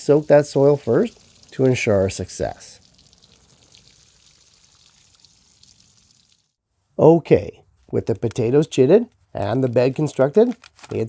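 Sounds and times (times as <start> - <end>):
water sprinkling onto soil: 0.0 - 6.6.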